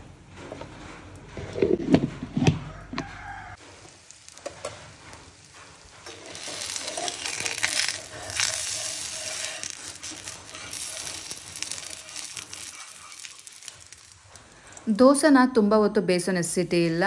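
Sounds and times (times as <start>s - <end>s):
batter sizzling on hot griddle: 3.5s - 14.9s
metal spatula scraping: 4.3s - 14.9s.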